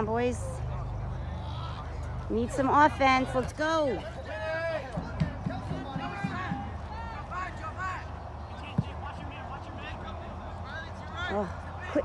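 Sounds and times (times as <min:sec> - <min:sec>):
distant shouting voices: 0:00.0 - 0:12.0.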